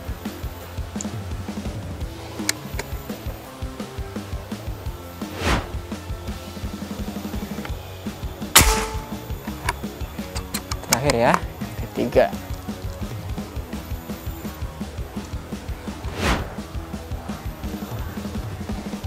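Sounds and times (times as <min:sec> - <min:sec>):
air rifle shot: 0:08.6 - 0:09.5.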